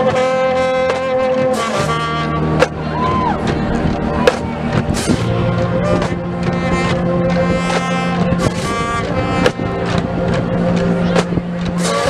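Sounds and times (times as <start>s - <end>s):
marching band playing: 0.0s - 12.0s
sharp percussion hits: 0.9s - 12.0s.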